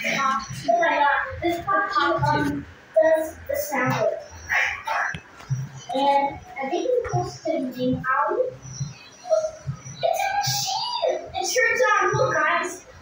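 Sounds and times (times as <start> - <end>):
young child singing: 0.0 - 4.2, 5.9 - 12.8.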